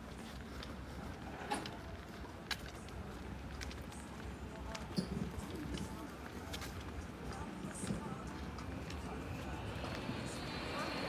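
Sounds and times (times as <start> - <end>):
footsteps on concrete: 0.0 - 10.8
wind rumble on microphone: 4.4 - 11.0.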